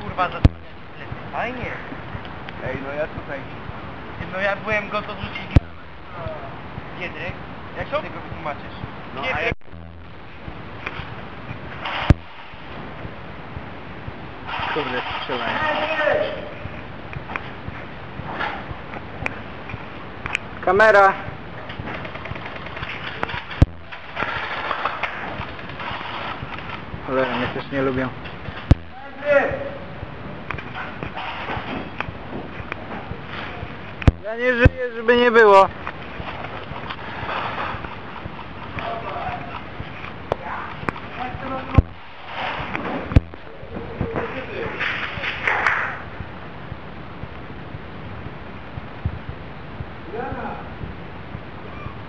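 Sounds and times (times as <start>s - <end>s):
steady low hiss: 0.0s - 52.0s.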